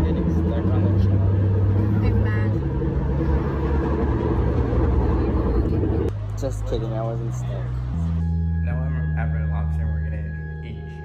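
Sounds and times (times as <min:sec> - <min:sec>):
trolley car rumble and hum: 0:00.0 - 0:08.4.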